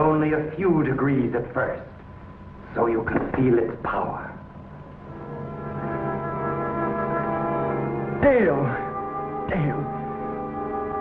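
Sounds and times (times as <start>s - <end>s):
low droning tone: 4.5s - 11.0s.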